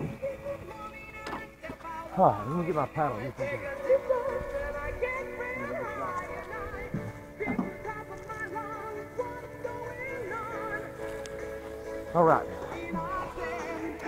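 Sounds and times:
background music with vibrato melody: 0:00.0 - 0:14.0.

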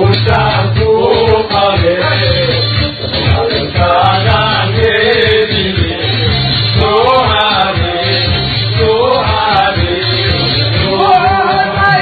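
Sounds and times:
backing music with bass beat: 0:00.0 - 0:12.0
man singing into microphone: 0:00.0 - 0:12.0.

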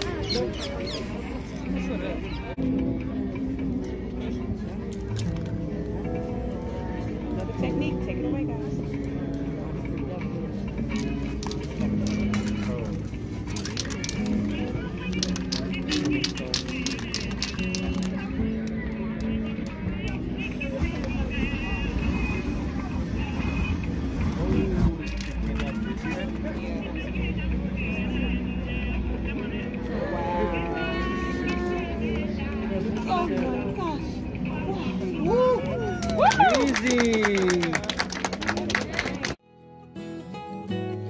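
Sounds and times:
voices: 0:00.0 - 0:39.4
background music: 0:00.0 - 0:41.0
people talking: 0:09.6 - 0:39.4.

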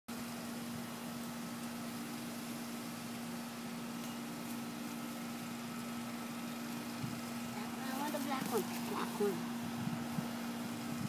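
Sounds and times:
fan hiss: 0:00.1 - 0:11.0.

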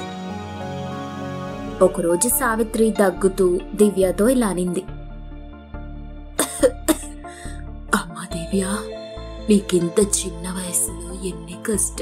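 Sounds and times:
soft background music: 0:00.0 - 0:12.0
woman coughing: 0:06.4 - 0:07.2.

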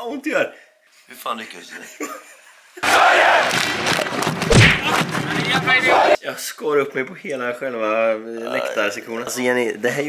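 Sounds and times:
thump: 0:03.5 - 0:05.7.

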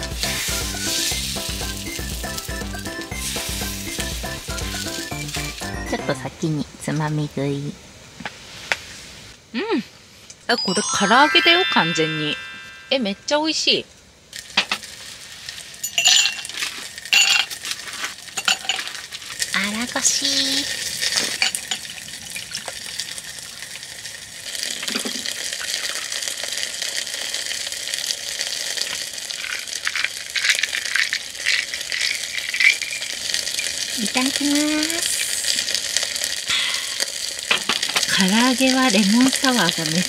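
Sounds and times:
chicken sizzling in pan: 0:00.0 - 0:06.2, 0:14.3 - 0:40.0
fizzy drink pouring over ice: 0:14.3 - 0:40.0
ice clinking in glass: 0:15.8 - 0:17.6, 0:18.3 - 0:19.0, 0:29.5 - 0:33.9.

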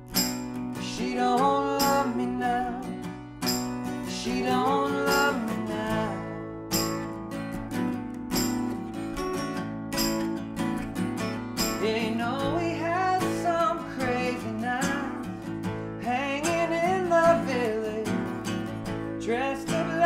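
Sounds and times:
acoustic guitars strumming: 0:00.0 - 0:20.0
man singing: 0:00.8 - 0:03.0, 0:04.0 - 0:06.4, 0:11.8 - 0:18.4, 0:19.2 - 0:20.0.

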